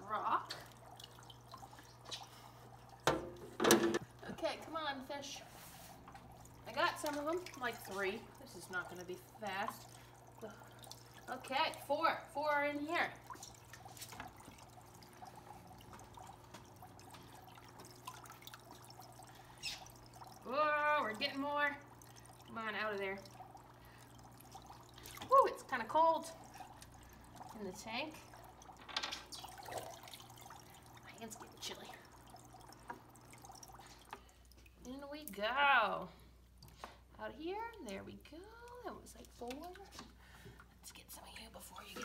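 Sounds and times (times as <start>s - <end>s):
steady low hum: 0.0s - 42.0s
water trickling: 0.0s - 42.0s
small splashes of dip net: 12.5s - 21.3s, 22.0s - 25.6s.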